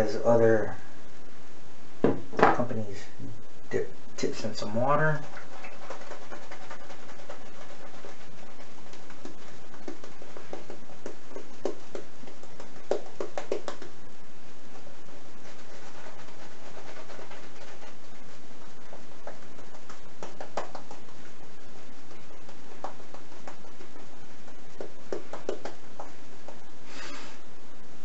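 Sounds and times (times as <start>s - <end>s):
steady background hiss: 0.0s - 28.0s
shaving brush scrubbing lather: 4.3s - 13.9s, 14.7s - 21.2s.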